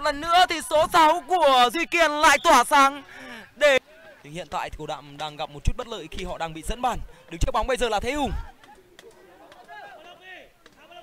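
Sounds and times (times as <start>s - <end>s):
distant players shouting: 0.0s - 4.4s.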